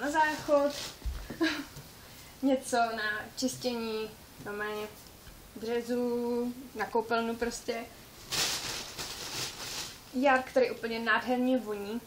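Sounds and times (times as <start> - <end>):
plastic packaging rustling: 0.0 - 1.6, 8.1 - 10.6.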